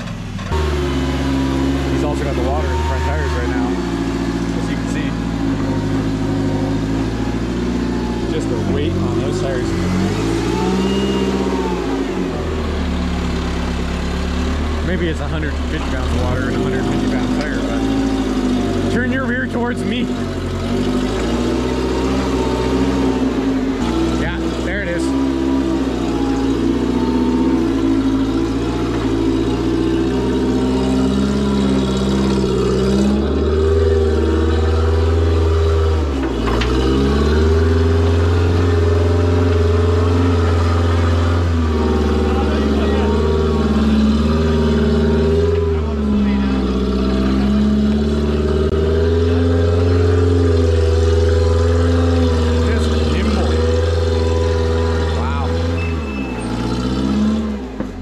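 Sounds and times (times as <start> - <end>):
engine working under load: 0.0 - 58.0.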